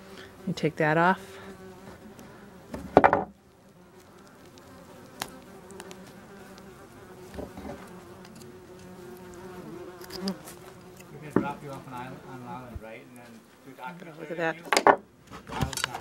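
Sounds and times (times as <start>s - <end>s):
hornets buzzing: 0.0s - 15.3s.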